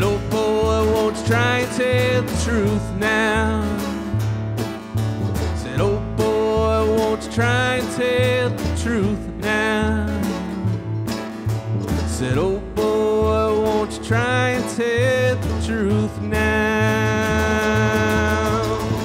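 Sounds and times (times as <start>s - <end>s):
picked mandolin: 0.0s - 19.0s
strummed acoustic guitar: 0.0s - 19.0s
upright bass: 0.0s - 19.0s.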